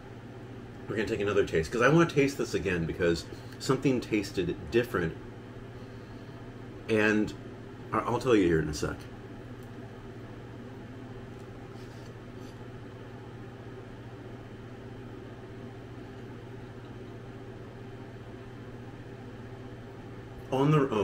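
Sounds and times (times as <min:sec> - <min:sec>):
mechanical hum: 0:00.0 - 0:21.0.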